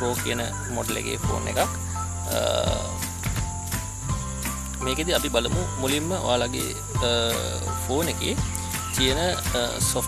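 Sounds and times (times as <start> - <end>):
background music with low notes: 0.0 - 10.0
crickets chirring: 0.0 - 10.0.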